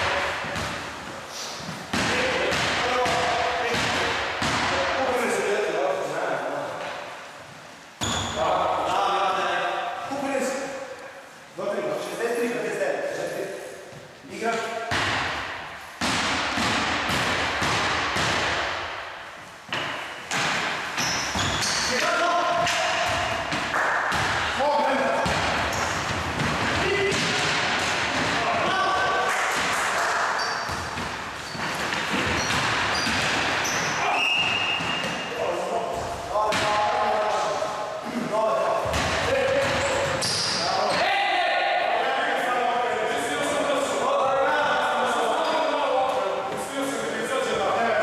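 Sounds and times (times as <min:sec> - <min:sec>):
basketball bouncing on wooden floor: 0:01.9 - 0:04.8, 0:23.0 - 0:24.5, 0:25.2 - 0:28.7, 0:30.7 - 0:35.2, 0:38.8 - 0:40.3.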